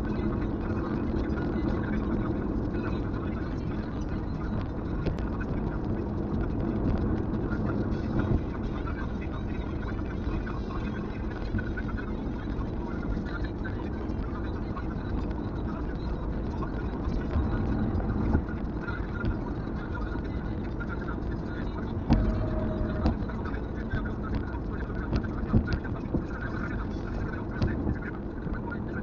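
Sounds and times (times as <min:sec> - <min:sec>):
road and tyre noise: 0:00.0 - 0:29.0
short steady tone: 0:22.1 - 0:23.2.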